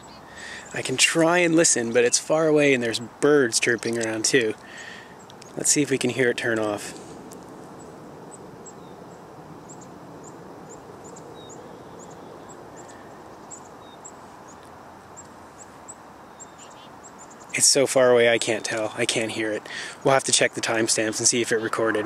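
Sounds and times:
low outdoor background noise: 0:00.0 - 0:22.0
small birds chirping: 0:00.0 - 0:22.0.

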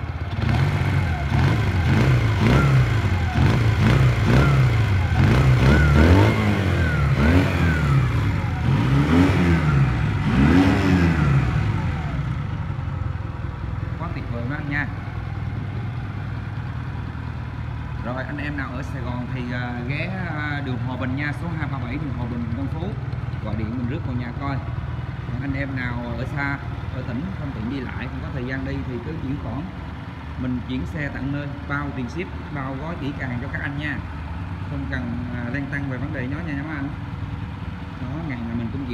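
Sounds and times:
motorcycle engine revving and idling: 0:00.0 - 0:38.9.

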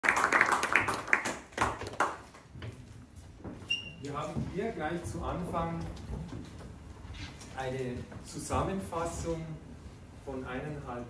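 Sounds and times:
audience applause: 0:00.0 - 0:02.3.

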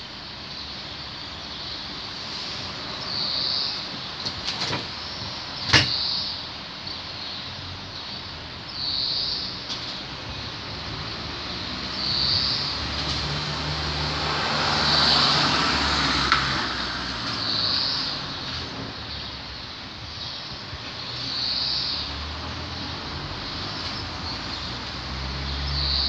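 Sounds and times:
motor vehicle passing: 0:10.0 - 0:19.0.

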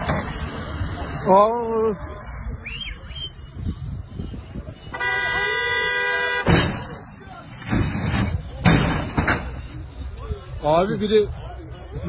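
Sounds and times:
vehicle horn: 0:04.1 - 0:06.6
car crashing down: 0:06.4 - 0:09.6.

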